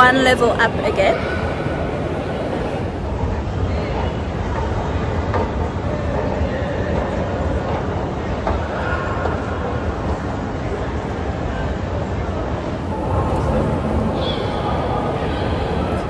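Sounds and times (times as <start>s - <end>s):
escalator rumbling and rattling: 0.0s - 16.0s.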